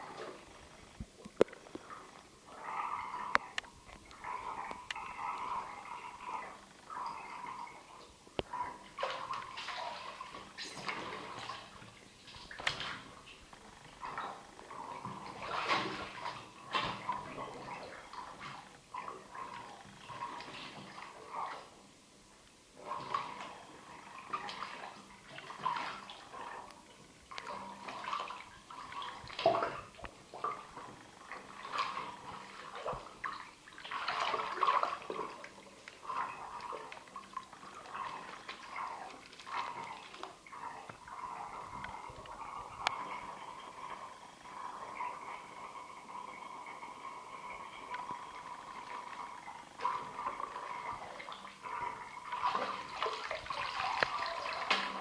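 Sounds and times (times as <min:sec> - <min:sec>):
water splashing in bathtub: 0:00.0 - 0:21.9, 0:22.8 - 0:55.0.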